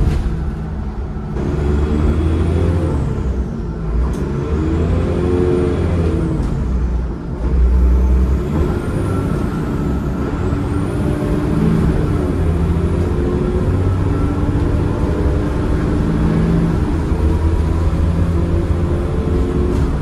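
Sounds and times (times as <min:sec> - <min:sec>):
bus diesel engine under power: 0:00.0 - 0:20.0.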